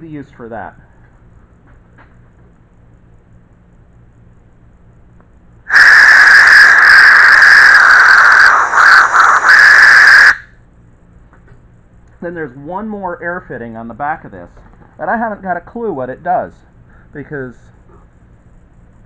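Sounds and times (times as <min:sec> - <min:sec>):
compressed air whistling hiss: 0:05.7 - 0:10.4.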